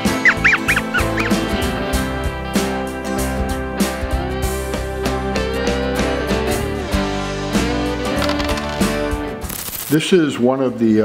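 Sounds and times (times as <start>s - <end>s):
high squeaky chirps: 0.0s - 1.6s
country guitar music: 0.0s - 9.6s.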